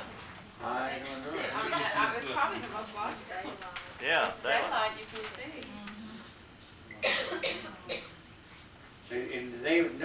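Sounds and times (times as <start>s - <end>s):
person coughing: 7.0s - 8.1s.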